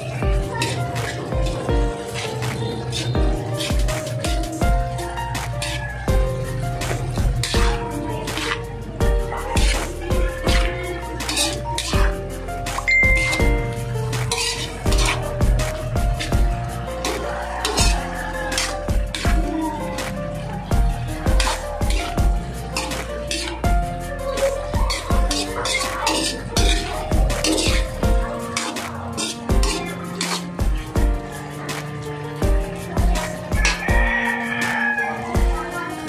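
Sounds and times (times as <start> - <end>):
spatula scraping frying pan: 0.0 - 35.4
background music with beat: 0.0 - 36.0.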